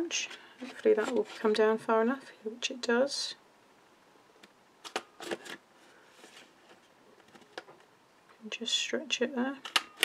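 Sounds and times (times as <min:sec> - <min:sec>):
card rustling: 0:04.8 - 0:07.8.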